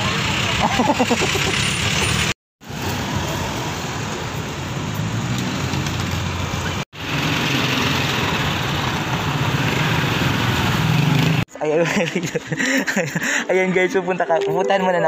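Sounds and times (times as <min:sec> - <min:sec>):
traffic on a busy road: 0:00.0 - 0:13.5.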